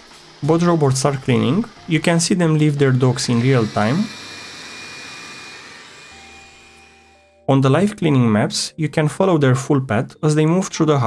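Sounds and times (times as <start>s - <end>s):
robot vacuum suction hiss: 0.0s - 7.2s.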